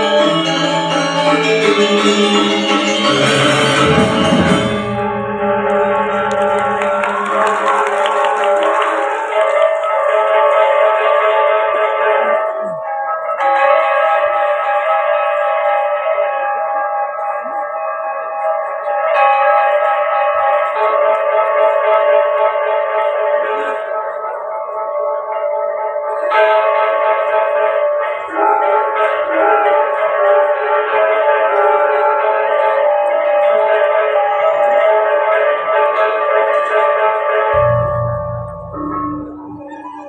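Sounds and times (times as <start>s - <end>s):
gamelan playing: 0.0s - 8.4s, 37.5s - 40.0s
low sustained tone: 37.5s - 40.0s.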